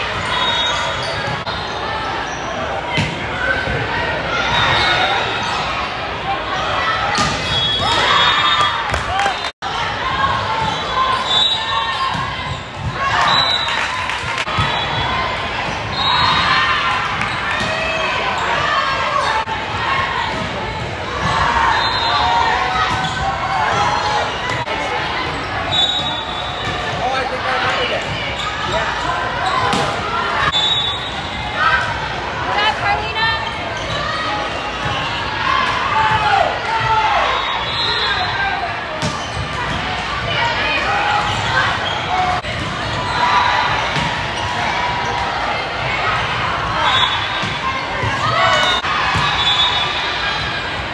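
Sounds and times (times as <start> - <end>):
spectators talking: 0.0 - 50.9
sneakers squeaking on floor: 0.1 - 3.7, 20.7 - 31.5, 33.4 - 35.2, 38.9 - 39.9.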